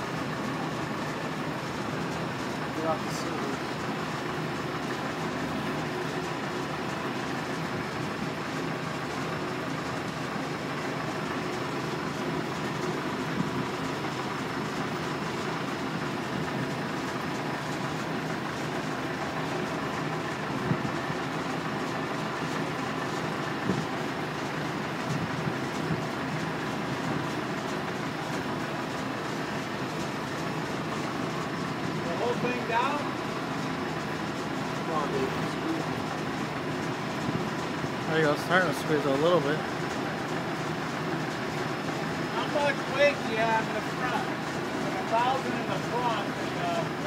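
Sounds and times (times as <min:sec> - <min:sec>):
lifting machinery humming: 0:00.0 - 0:47.0.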